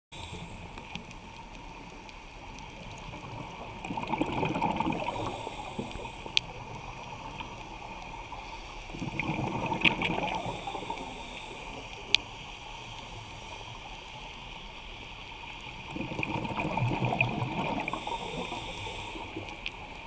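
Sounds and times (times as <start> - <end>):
underwater hiss: 0.1 - 20.0
diver's bubbles gurgling: 2.6 - 7.6, 8.9 - 11.2, 15.7 - 19.7.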